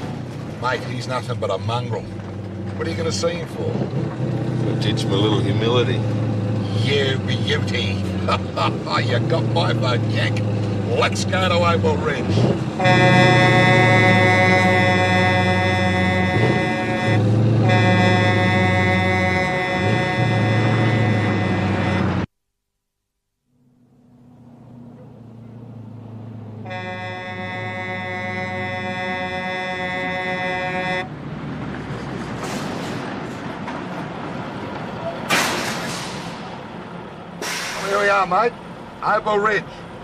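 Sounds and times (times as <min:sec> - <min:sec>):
diesel engine rumble: 0:00.0 - 0:22.3, 0:23.6 - 0:40.0
truck air horn: 0:12.7 - 0:22.3, 0:26.6 - 0:31.1
air brake hiss: 0:32.4 - 0:33.0, 0:35.4 - 0:36.4, 0:37.4 - 0:38.0.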